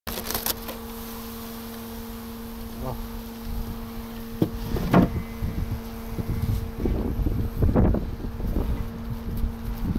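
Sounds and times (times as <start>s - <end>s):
honeybee colony humming: 0.1s - 9.9s
wind rumble on microphone: 3.4s - 9.9s.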